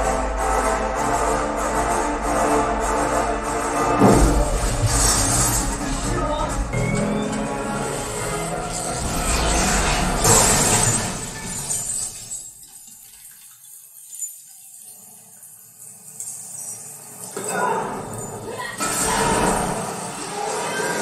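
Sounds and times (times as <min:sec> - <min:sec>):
action film music and effects: 0:00.0 - 0:12.8, 0:15.6 - 0:21.0.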